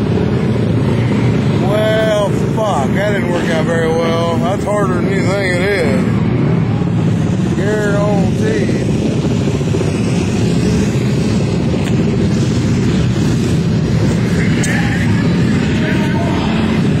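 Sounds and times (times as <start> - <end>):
motorcycle engines droning: 0.0 - 17.0.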